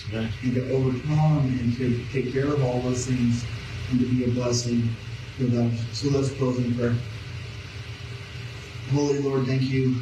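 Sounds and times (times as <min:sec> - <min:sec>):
man speaking: 0:00.0 - 0:07.1, 0:08.9 - 0:10.0
steady low hum: 0:00.0 - 0:10.0.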